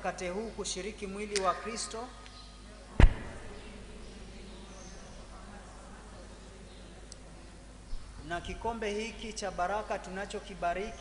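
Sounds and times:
sharp knock with low thud: 0:03.0 - 0:03.6.

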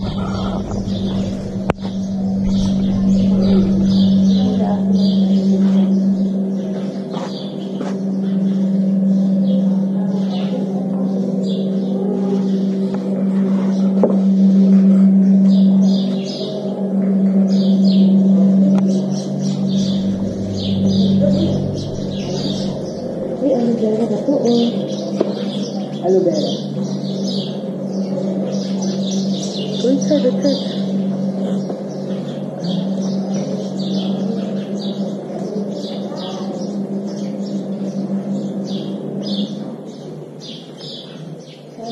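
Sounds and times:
small birds chirping: 0:00.0 - 0:13.0, 0:15.2 - 0:41.9
steady low hum: 0:00.0 - 0:41.9.

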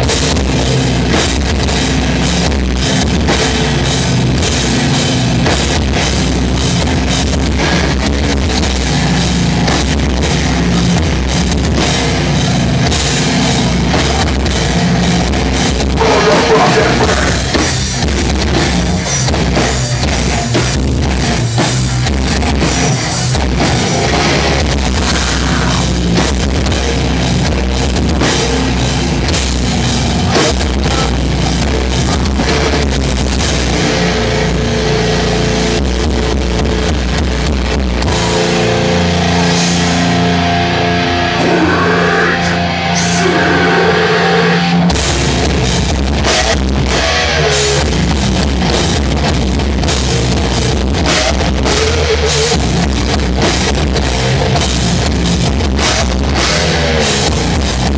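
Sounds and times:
hardcore band playing: 0:00.0 - 0:57.9.

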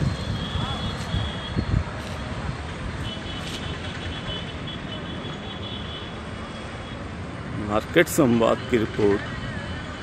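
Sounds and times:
wind rumble on microphone: 0:00.0 - 0:03.3
distant road traffic: 0:00.0 - 0:10.0.

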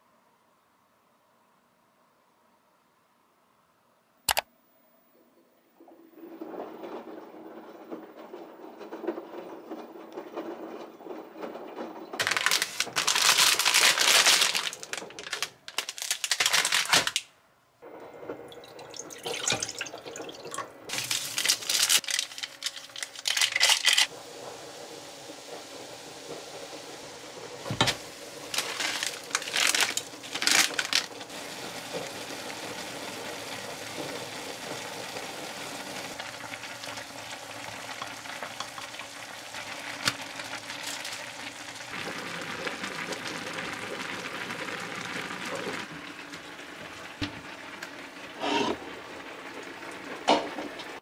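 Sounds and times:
plastic packet crinkling: 0:12.2 - 0:17.3, 0:20.9 - 0:24.1, 0:28.5 - 0:31.3, 0:39.6 - 0:41.6
water boiling in pan: 0:17.8 - 0:51.0
water running from tap: 0:18.4 - 0:23.4, 0:24.1 - 0:48.0.

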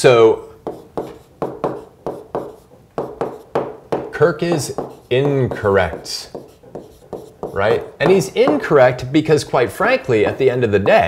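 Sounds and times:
pen tapping and scraping on screen: 0:00.6 - 0:08.8.

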